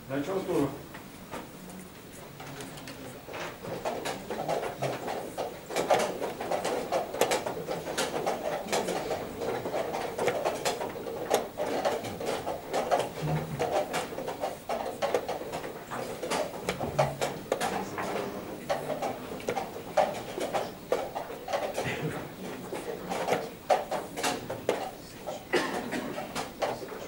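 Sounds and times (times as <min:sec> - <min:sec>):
steady background noise: 0:00.0 - 0:27.0
chess pieces knocking on board: 0:03.7 - 0:21.9.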